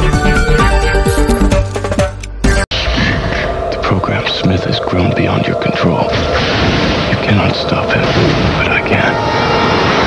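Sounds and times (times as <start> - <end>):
low rumble: 2.7 - 10.0
voices: 2.8 - 6.3, 7.1 - 9.2.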